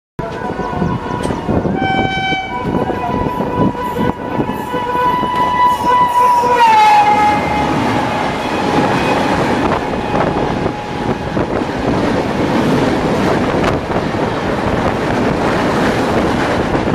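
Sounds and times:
train horn: 0:00.2 - 0:11.7
passing train coaches rumbling: 0:00.2 - 0:16.9.

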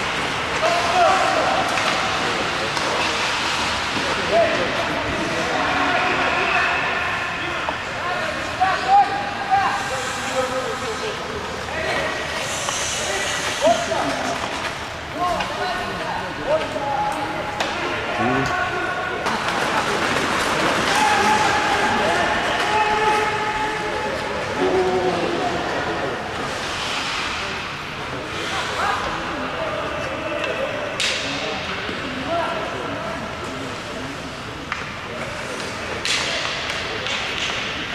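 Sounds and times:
players shouting: 0:20.8 - 0:25.8.

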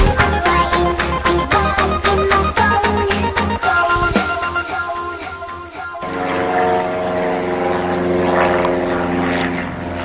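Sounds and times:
propeller aircraft engine running: 0:00.0 - 0:10.0.

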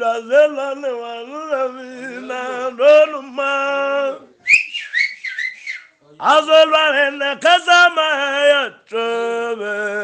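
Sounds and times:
high sliding whistling: 0:04.5 - 0:06.0.

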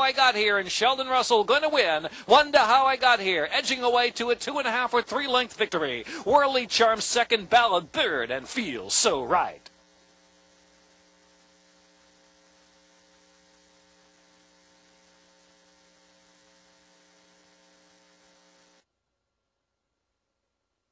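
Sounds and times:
faint electrical hum: 0:00.0 - 0:20.9.

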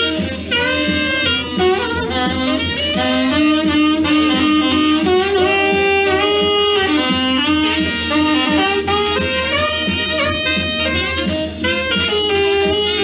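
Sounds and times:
alto saxophone solo: 0:00.0 - 0:13.0
swing backing band: 0:00.0 - 0:13.0.

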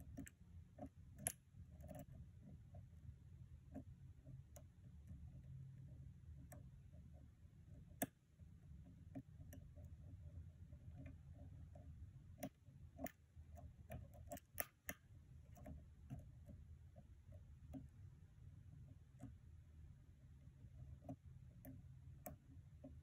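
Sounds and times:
low steady hum: 0:00.0 - 0:23.0.

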